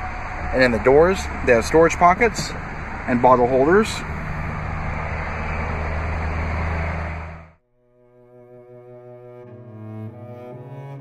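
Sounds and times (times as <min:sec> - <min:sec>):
vehicle idling hum: 0:00.0 - 0:07.6.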